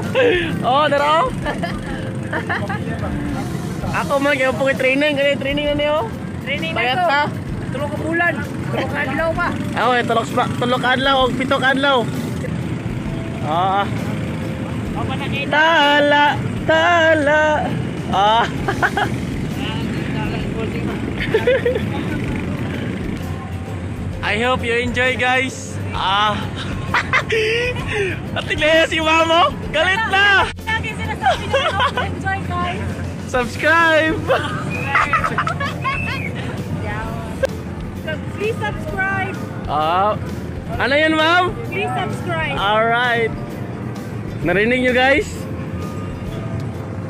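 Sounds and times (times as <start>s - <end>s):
voices: 0.0s - 43.5s
boat engine rumble: 0.0s - 47.0s
people talking and calling out: 0.0s - 47.0s.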